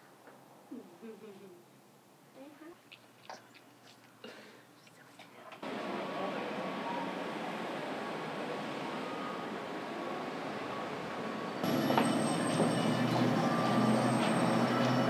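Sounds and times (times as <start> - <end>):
low engine rumble: 5.6 - 15.0
street traffic: 5.6 - 15.0.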